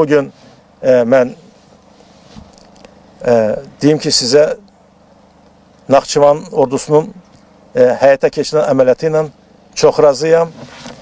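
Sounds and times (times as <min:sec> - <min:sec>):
man talking: 0:00.0 - 0:01.5, 0:03.2 - 0:04.7, 0:05.9 - 0:10.6
faint background hum: 0:00.0 - 0:11.0.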